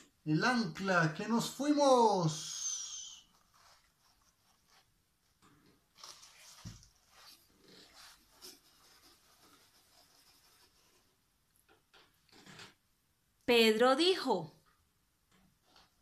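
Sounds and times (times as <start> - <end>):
soft rustling: 3.1 - 11.3.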